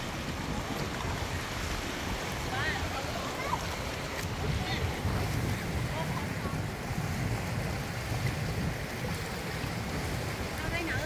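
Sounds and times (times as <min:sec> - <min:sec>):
sea waves washing over rocks: 0:00.0 - 0:11.0
wind buffeting microphone: 0:00.0 - 0:11.0.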